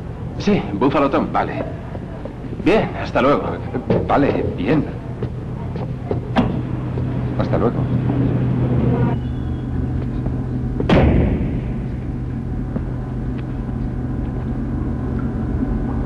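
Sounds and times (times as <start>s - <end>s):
steady low hum: 0.0s - 16.0s
door shutting thud: 6.1s - 6.8s, 10.8s - 12.2s.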